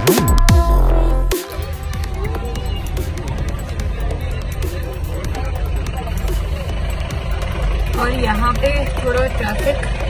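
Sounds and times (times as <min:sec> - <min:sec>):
car engine rumble: 0:00.0 - 0:10.0
road noise inside car: 0:01.9 - 0:10.0.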